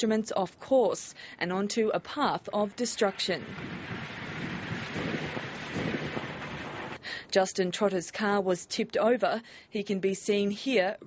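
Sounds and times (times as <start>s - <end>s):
strong wind on microphone: 3.0s - 7.0s.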